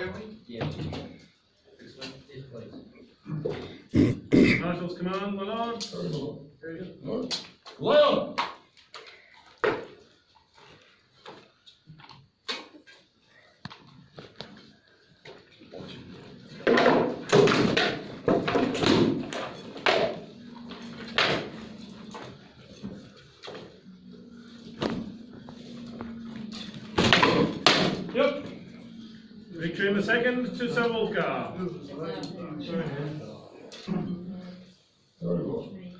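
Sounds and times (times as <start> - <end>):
swords striking shield and armour: 27.0 - 28.1.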